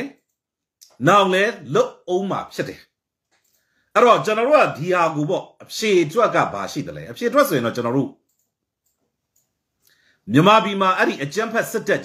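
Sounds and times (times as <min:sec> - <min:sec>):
man speaking: 0:00.0 - 0:03.0, 0:04.0 - 0:08.2, 0:10.2 - 0:12.0.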